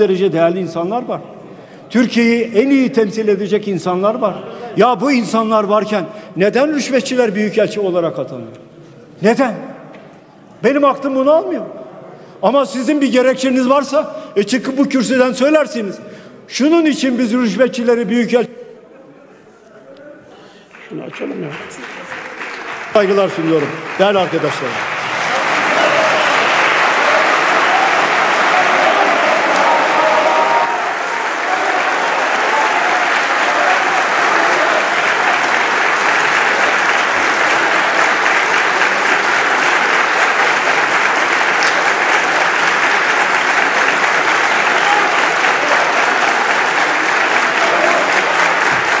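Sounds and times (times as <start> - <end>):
crowd applauding: 20.6 - 49.0.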